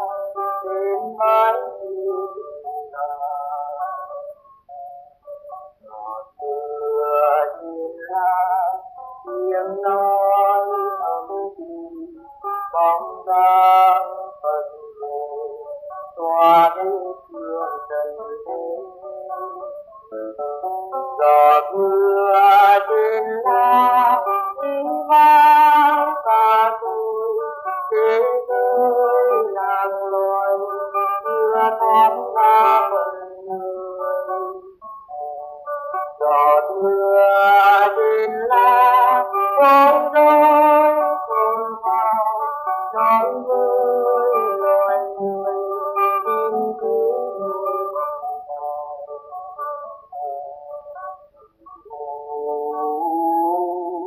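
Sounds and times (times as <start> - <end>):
high voice singing slow melody: 0.0 - 54.0
instrumental accompaniment: 0.0 - 54.0.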